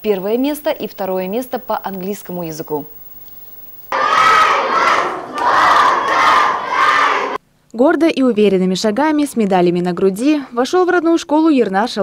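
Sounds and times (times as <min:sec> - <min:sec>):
children cheering and shouting: 0:03.9 - 0:07.4.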